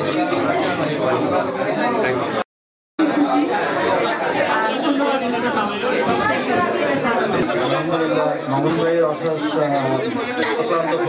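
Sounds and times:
chatter of people: 0.0s - 2.4s, 3.0s - 11.0s.

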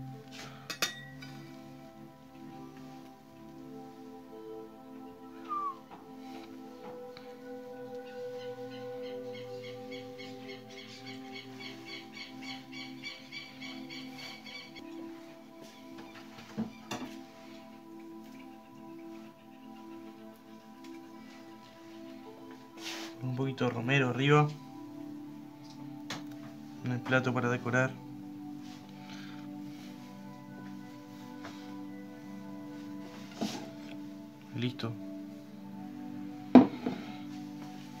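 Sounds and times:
background music of held tones: 0.0s - 38.0s.

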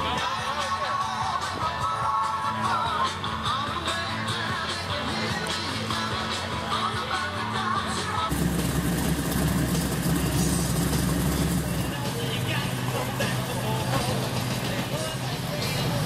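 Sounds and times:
rock and roll music: 0.0s - 16.0s
low engine rumble: 8.2s - 16.0s
background voices: 9.8s - 16.0s.

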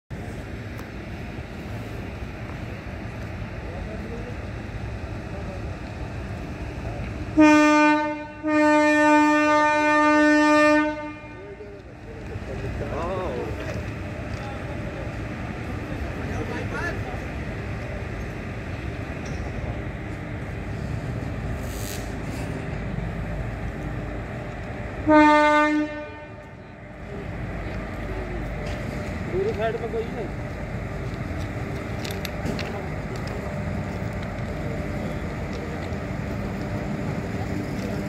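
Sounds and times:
low rumble of moving train: 0.1s - 38.0s
train horn blasts: 7.4s - 11.6s, 25.0s - 26.5s.

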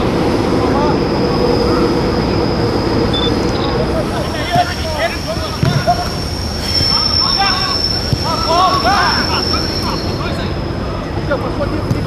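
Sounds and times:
high-pitched whine: 0.0s - 11.8s
voices shouting: 0.0s - 11.9s.

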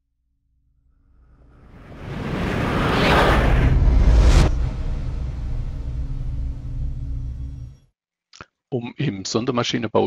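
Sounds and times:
low rumbling drone: 0.8s - 7.9s
whoosh: 1.0s - 7.9s.

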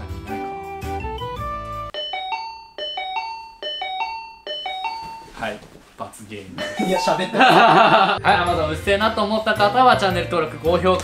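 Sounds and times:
two-tone doorbell chime: 1.9s - 5.4s, 6.6s - 7.9s.

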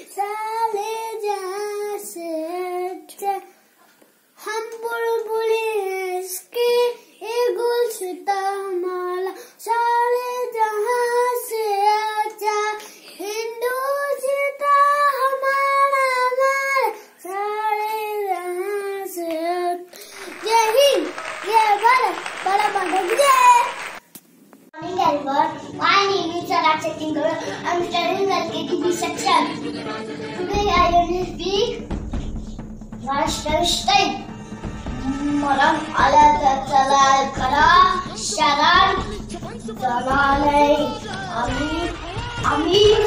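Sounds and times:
boy singing solo: 35.0s - 43.0s.

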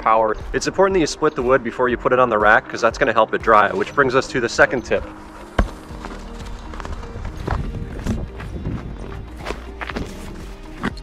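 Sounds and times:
background music: 0.0s - 11.0s
maul striking a log: 5.5s - 6.1s.

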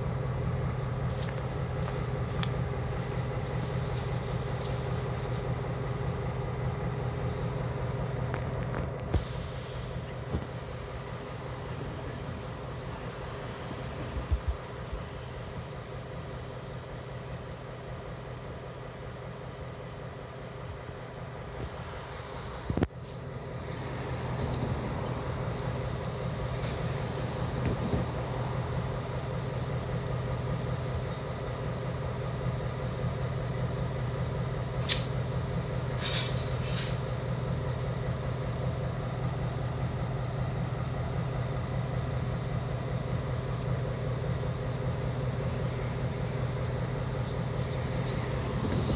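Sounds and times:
diesel locomotive engine humming: 0.0s - 48.9s.

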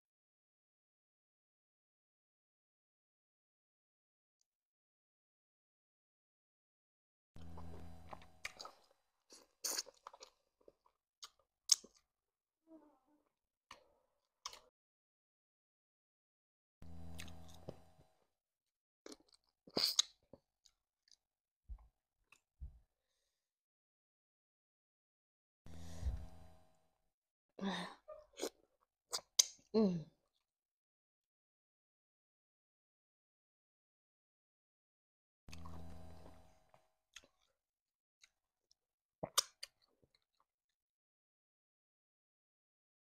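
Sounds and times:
low hum: 7.4s - 8.6s, 16.8s - 18.0s, 25.7s - 26.7s, 35.5s - 36.6s
woman sighing while eating: 27.6s - 28.0s.

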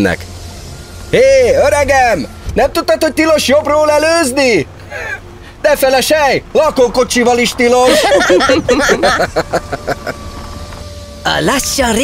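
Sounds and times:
car engine and road rumble: 0.0s - 12.0s
person speaking: 7.8s - 9.2s.

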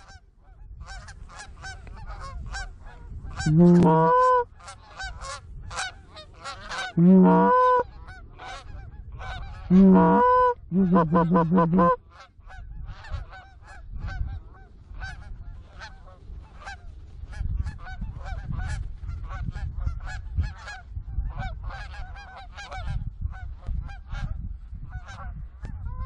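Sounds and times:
wind rumbling on microphone: 0.0s - 26.0s
geese honking: 0.9s - 13.8s.

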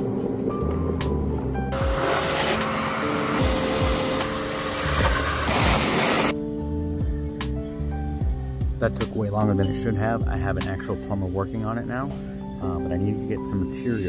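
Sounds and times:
background music with steady tones: 0.0s - 14.0s
shop vacuum sucking water: 1.7s - 6.3s.

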